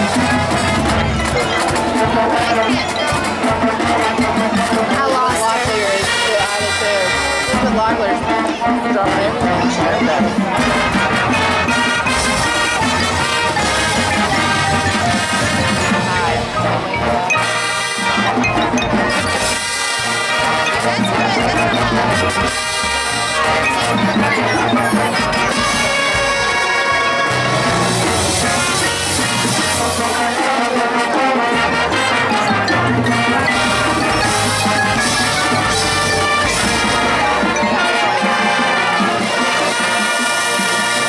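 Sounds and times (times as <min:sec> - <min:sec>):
brass section playing: 0:00.0 - 0:41.0
marching bass drums: 0:00.0 - 0:41.0.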